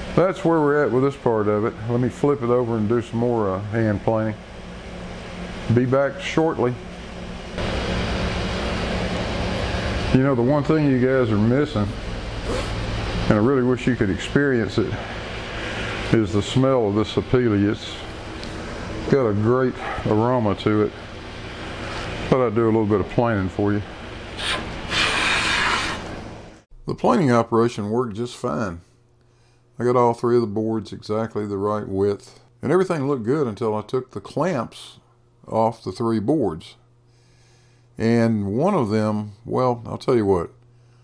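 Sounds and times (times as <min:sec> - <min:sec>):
low hum: 0:00.0 - 0:27.0
fan blowing air: 0:00.0 - 0:28.8
hand plane shaving wood: 0:24.4 - 0:26.1.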